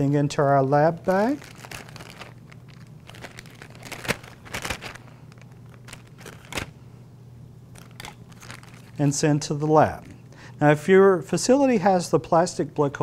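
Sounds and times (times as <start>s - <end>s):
plastic bag crinkling: 0.8s - 6.8s, 7.7s - 10.1s.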